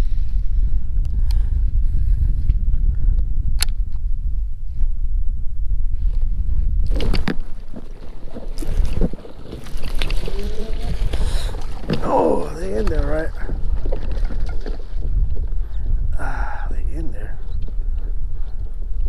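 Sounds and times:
wind rumbling on microphone: 0:00.0 - 0:19.0
dry reeds scraping and crackling: 0:06.9 - 0:15.7.

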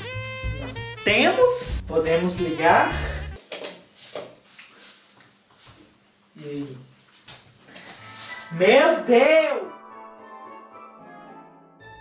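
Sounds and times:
background music: 0:00.0 - 0:03.4, 0:08.0 - 0:12.0.

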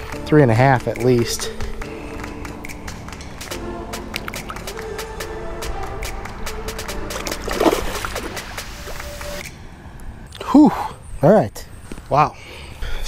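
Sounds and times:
background music with held notes: 0:00.0 - 0:09.6
fish splashing into water: 0:07.1 - 0:09.2.

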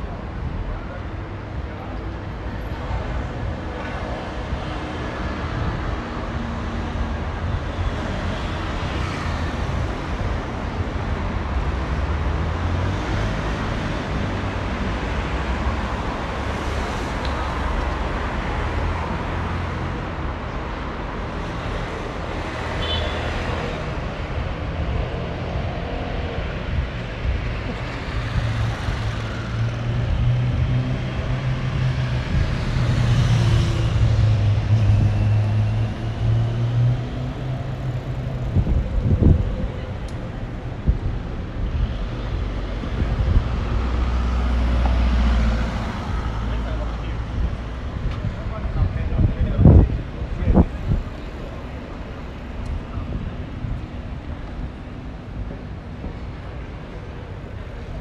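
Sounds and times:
car and scooter engines: 0:00.0 - 0:58.0.

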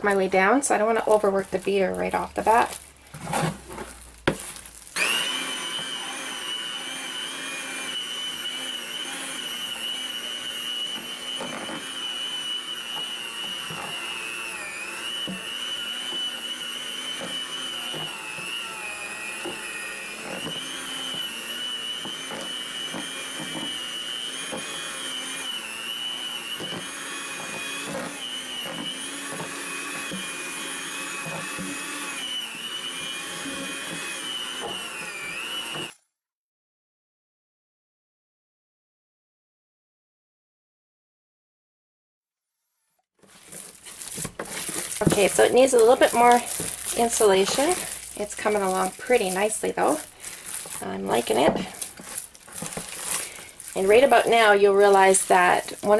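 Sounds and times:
electric hand mixer motor whine: 0:00.0 - 0:36.0, 0:42.8 - 0:55.9.

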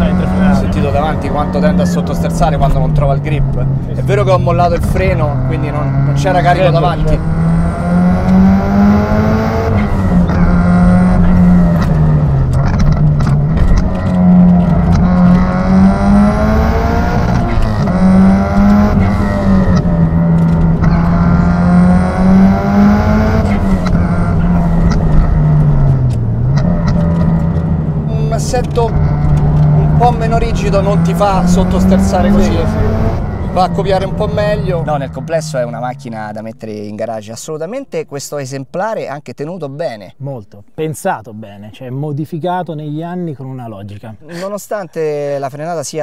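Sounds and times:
turbocharged car engine revving: 0:00.0 - 0:36.6.

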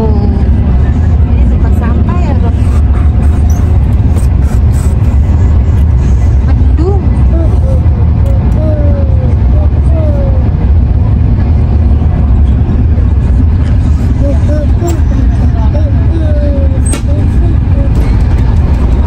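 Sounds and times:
faint voices: 0:00.0 - 0:19.0
train carriage rumble: 0:00.0 - 0:19.0.

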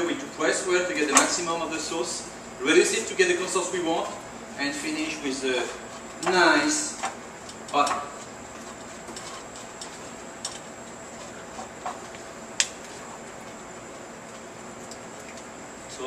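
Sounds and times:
kitchen room noise: 0:00.0 - 0:16.0.

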